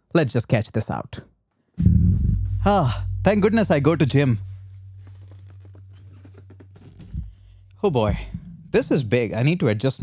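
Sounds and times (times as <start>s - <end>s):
steady low hum: 1.8s - 9.3s.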